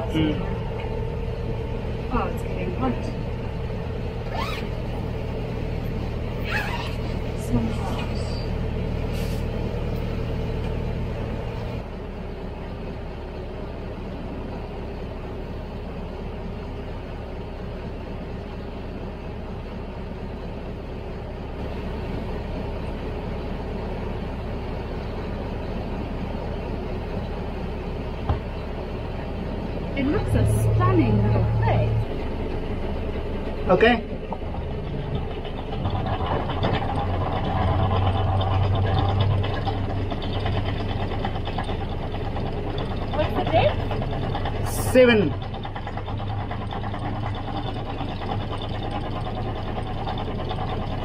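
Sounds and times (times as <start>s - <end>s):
boat engine running: 0.0s - 51.0s.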